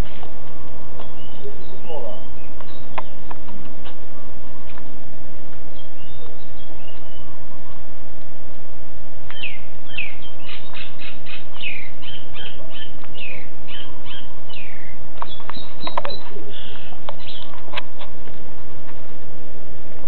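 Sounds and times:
bird chirping high: 0:09.3 - 0:17.5.

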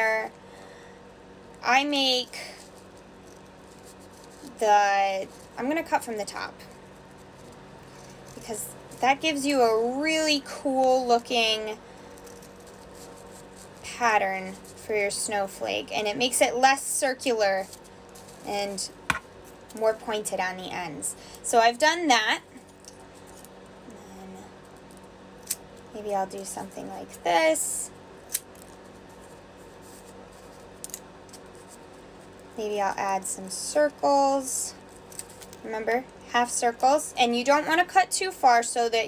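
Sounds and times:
low room hum: 0:00.0 - 0:39.0
scissor blades clicking: 0:28.3 - 0:28.5.

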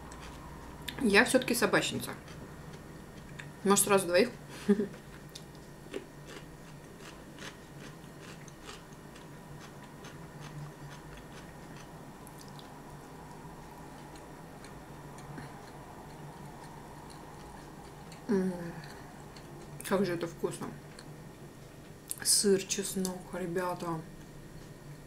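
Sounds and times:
steady low hum: 0:00.0 - 0:25.0
cucumber chewing crunches: 0:05.1 - 0:12.7.

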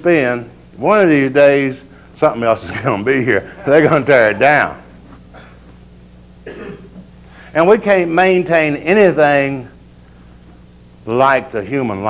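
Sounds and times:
low steady hum: 0:00.0 - 0:12.0
person coughing: 0:05.2 - 0:05.8, 0:06.4 - 0:07.0.

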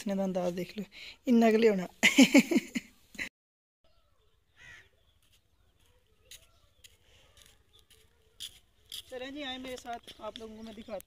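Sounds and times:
outdoor ambience: 0:00.0 - 0:11.0
person laughing: 0:02.0 - 0:03.3.

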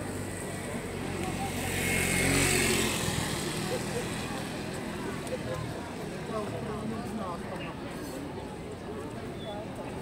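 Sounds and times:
engine passing by: 0:00.0 - 0:06.9.

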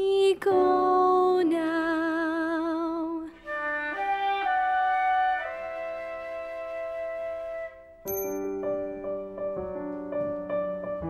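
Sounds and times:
soft woodwind chords: 0:03.4 - 0:08.0.

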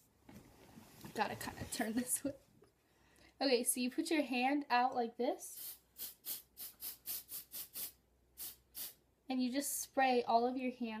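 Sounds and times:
aerosol spray hissing in bursts: 0:05.5 - 0:09.0.

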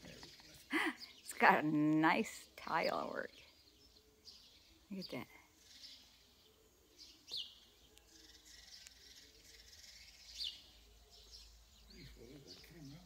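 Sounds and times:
songbird chirping: 0:00.0 - 0:13.0.

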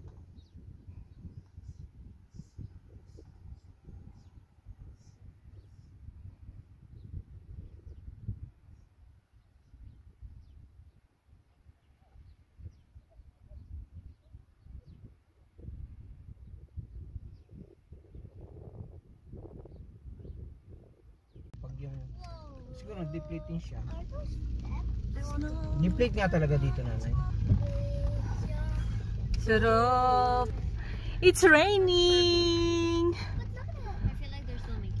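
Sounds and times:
wind buffeting microphone: 0:00.0 - 0:11.1, 0:12.2 - 0:35.0.

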